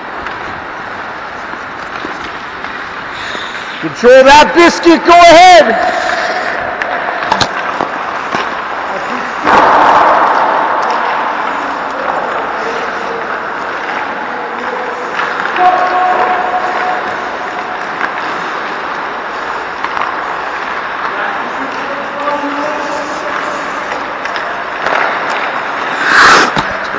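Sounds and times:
stick and puck clicks: 0.0s - 3.5s, 5.8s - 26.9s
skates scraping across ice: 0.0s - 26.9s.

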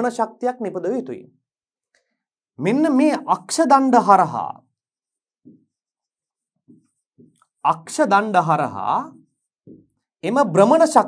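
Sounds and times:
marker scraping on whiteboard: 4.8s - 7.6s, 9.1s - 10.0s.

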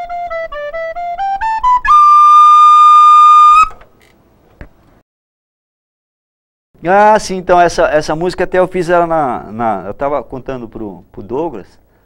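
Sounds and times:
flute playing high note: 1.3s - 3.8s.

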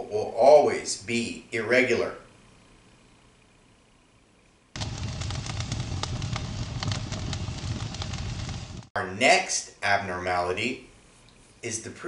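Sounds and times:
fire crackling: 4.8s - 9.0s
low fire rumble: 4.8s - 9.0s.

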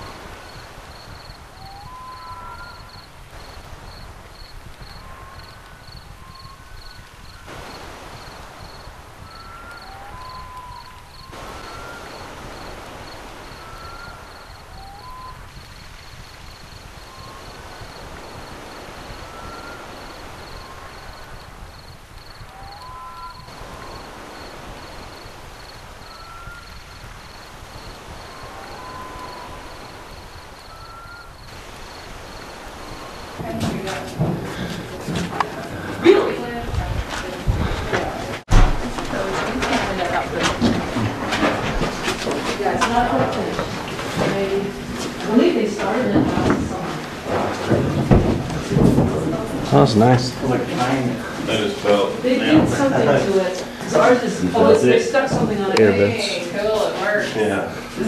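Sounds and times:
short whistled chirps: 1.6s - 3.0s, 9.3s - 12.2s, 13.6s - 15.4s, 19.2s - 19.9s, 22.5s - 24.0s, 28.6s - 29.8s, 30.7s - 31.3s.

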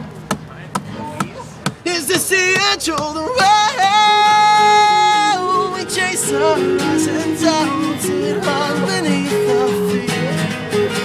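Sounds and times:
acoustic song: 0.1s - 11.0s
sharp percussive taps: 0.2s - 3.5s
person singing: 1.9s - 10.7s.

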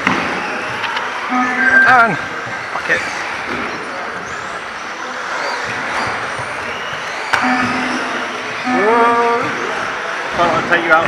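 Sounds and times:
electric motors whining: 7.0s - 10.0s.

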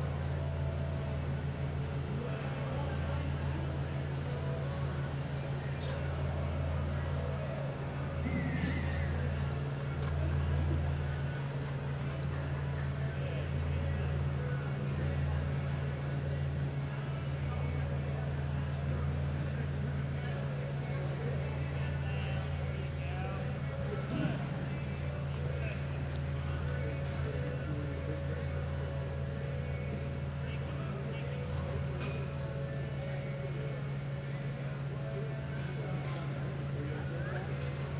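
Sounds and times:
steady low hum: 0.0s - 37.9s.

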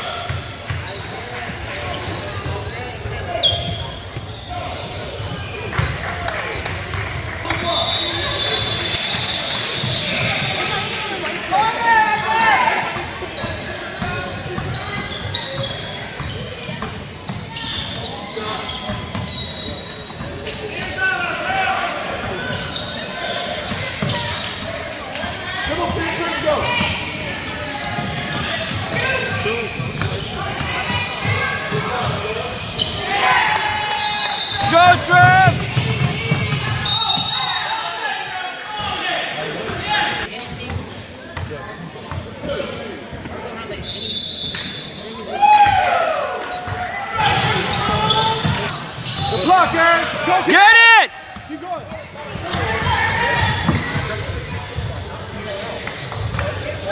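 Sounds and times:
shouts and chatter: 0.0s - 40.4s, 42.5s - 56.9s.

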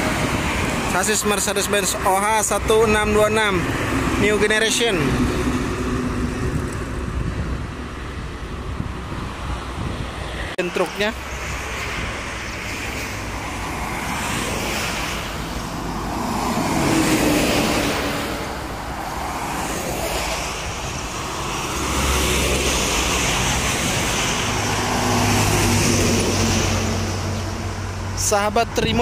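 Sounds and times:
heavy vehicle engine drone: 0.0s - 29.0s
highway traffic passing: 0.0s - 29.0s.

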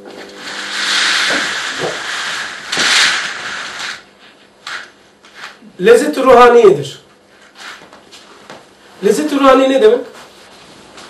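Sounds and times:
loud hiss: 0.4s - 4.1s.

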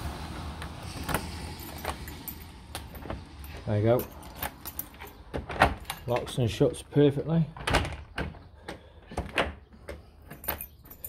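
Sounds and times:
door lock clicks and clunks: 7.6s - 10.6s.

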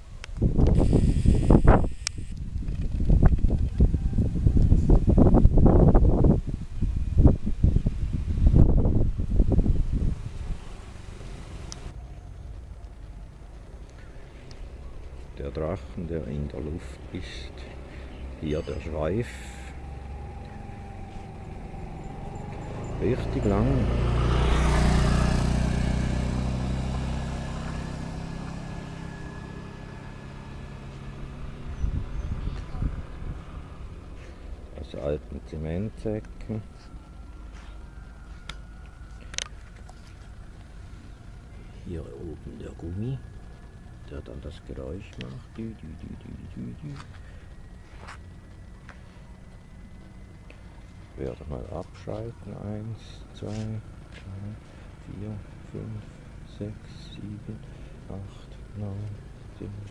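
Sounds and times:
kite hummer buzzing in wind: 0.0s - 11.9s
scooter engine passing by: 8.0s - 59.9s.

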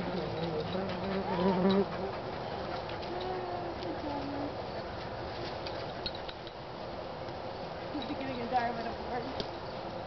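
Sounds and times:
flying insect buzzing: 0.0s - 2.1s.

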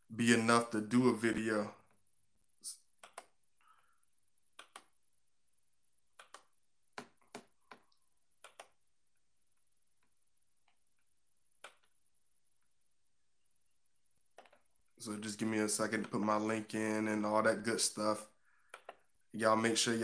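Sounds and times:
computer mouse clicks: 3.0s - 3.4s, 4.6s - 5.0s, 6.2s - 8.8s, 11.6s - 12.0s, 18.7s - 19.1s.

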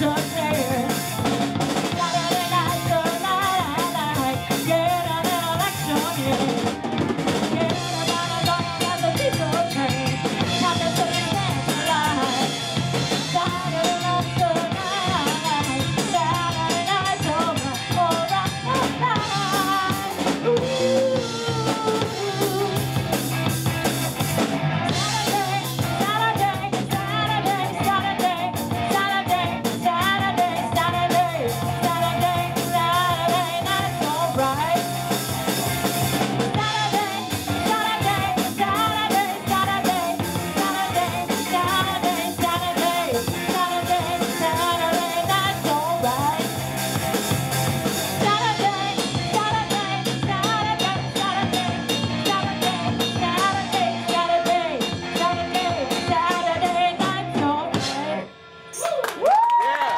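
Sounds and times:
woman singing lead: 0.0s - 23.6s, 24.6s - 58.3s
electric bass: 0.0s - 59.0s
drum kit: 0.0s - 59.9s
electric guitar: 0.0s - 59.9s.

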